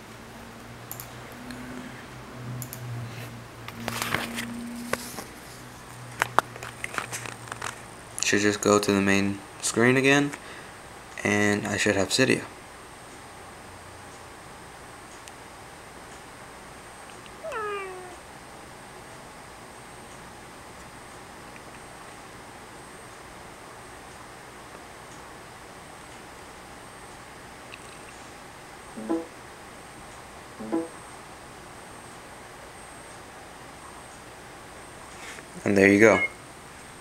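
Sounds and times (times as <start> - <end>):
steady low hiss: 4.4 - 37.0.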